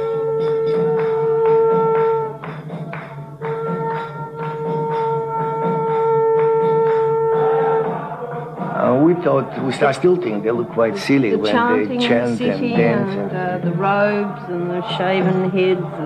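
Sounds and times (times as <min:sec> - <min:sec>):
conch shell blasts: 0:00.0 - 0:09.2
percussion beat: 0:00.0 - 0:16.0.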